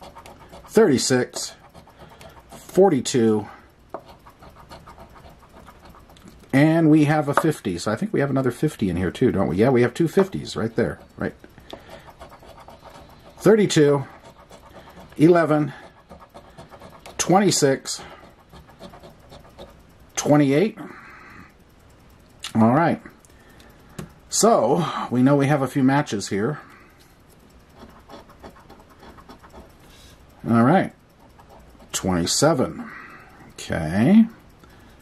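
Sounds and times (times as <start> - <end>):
coin scratching lottery ticket: 0.0 - 7.6, 9.2 - 20.5, 27.7 - 32.7.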